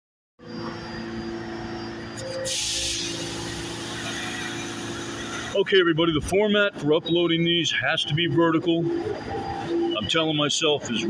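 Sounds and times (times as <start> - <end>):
subway platform rumble and hum: 0.4 - 11.0.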